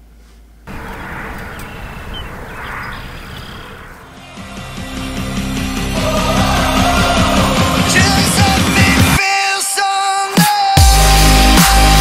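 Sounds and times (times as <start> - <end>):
faint bird chirps: 0.7 - 4.4
steady rushing noise: 0.7 - 5.9.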